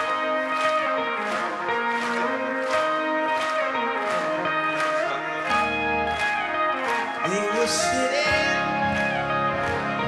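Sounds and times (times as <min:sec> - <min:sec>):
clean electric guitar riff: 0:00.0 - 0:10.0.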